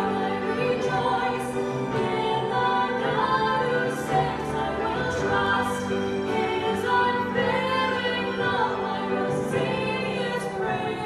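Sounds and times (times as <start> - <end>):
two women singing worship song: 0.0 - 11.0.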